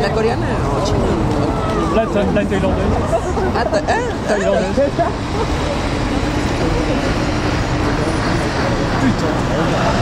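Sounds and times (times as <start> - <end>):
crowd talking: 0.0 - 10.0
traffic rumble: 0.0 - 10.0.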